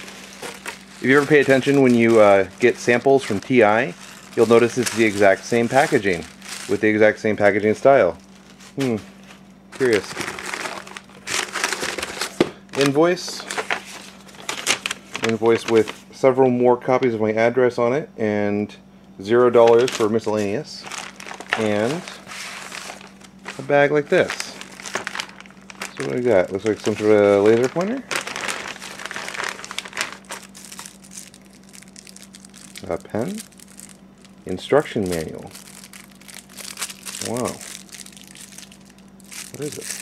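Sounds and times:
plastic bags crinkling: 0.0 - 16.0, 19.6 - 40.0.

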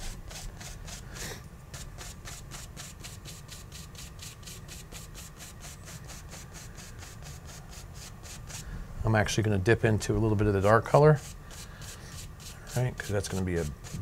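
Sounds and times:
paintbrush scrubbing on canvas: 0.0 - 8.7, 10.4 - 14.0.

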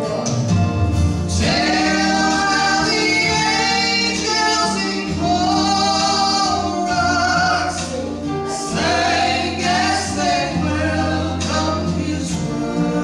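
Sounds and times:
women singing in harmony: 1.3 - 13.0.

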